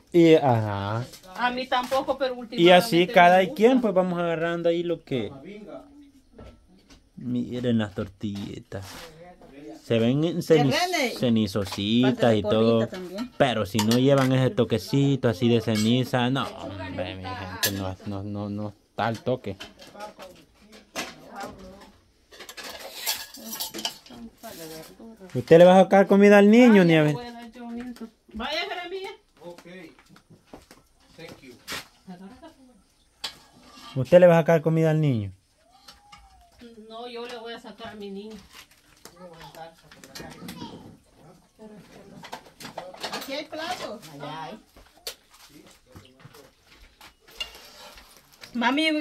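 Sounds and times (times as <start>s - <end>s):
dishes and cutlery clinking: 13.4s - 14.6s, 15.6s - 16.6s, 17.6s - 18.0s, 22.3s - 24.8s, 42.0s - 44.2s, 47.2s - 48.2s.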